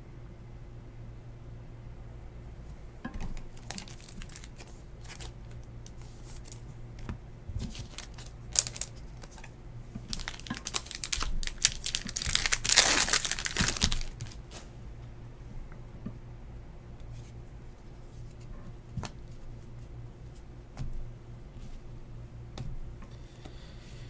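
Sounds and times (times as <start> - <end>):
foil wrapper crinkling and tearing: 3.4 - 6.6, 7.6 - 9.5, 10.1 - 14.6.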